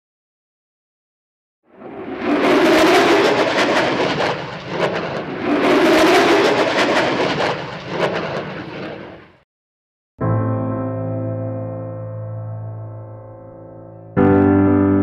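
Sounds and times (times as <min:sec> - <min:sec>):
jet engine roar: 0:01.7 - 0:09.4.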